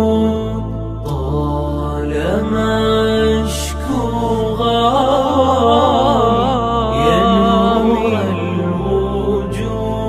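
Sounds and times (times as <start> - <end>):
low vocal drone: 0.0 - 10.0
man singing a long note: 0.0 - 10.0.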